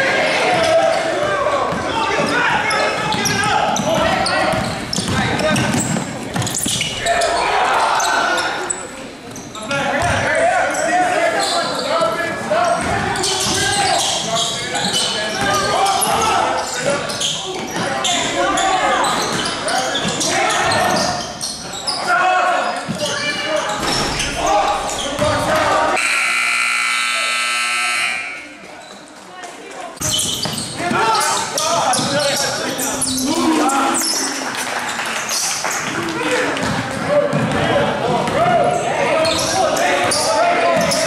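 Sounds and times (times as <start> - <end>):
voices in a gym: 0.0 - 41.0
scoreboard buzzer: 26.0 - 28.6.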